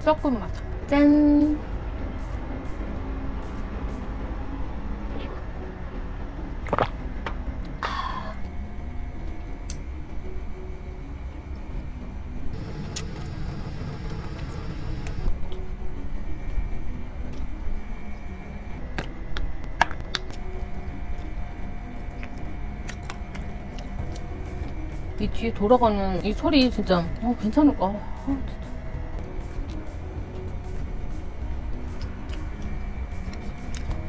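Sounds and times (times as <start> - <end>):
low machine drone: 0.0 - 34.0.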